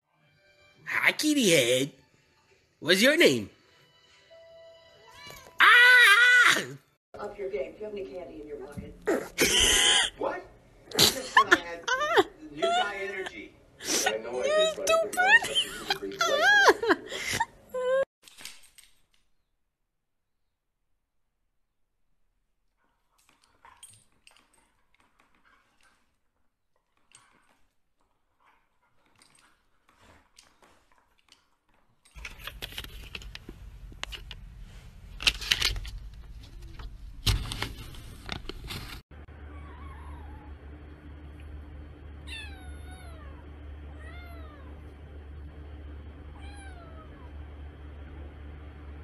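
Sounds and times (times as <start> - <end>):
steady low hum: 39.2 - 49.0.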